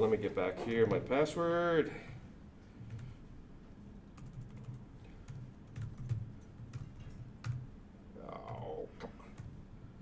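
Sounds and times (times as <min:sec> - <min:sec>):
computer keyboard clicks: 0:04.2 - 0:07.6.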